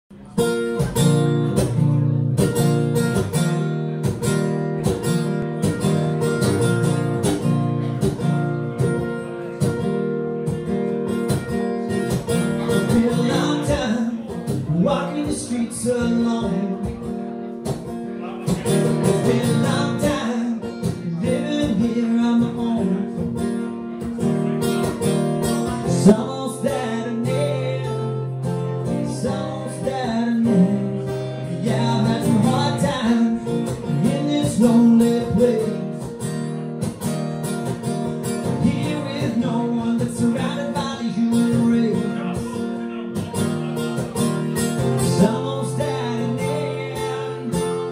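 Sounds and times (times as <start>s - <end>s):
strummed acoustic guitar: 0.1s - 47.9s
man singing: 8.1s - 36.4s, 38.2s - 47.9s.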